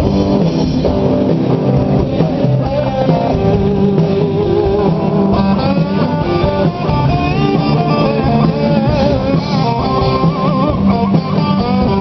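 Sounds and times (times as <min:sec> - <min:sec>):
electric guitar bent notes: 0:00.0 - 0:12.0
live rock band playing: 0:00.0 - 0:12.0.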